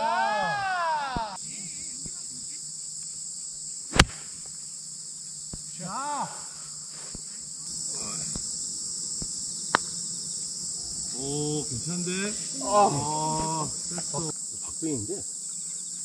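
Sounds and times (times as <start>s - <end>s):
insects chirring: 0.0s - 16.0s
golf club striking ball: 3.9s - 4.6s, 9.2s - 10.0s.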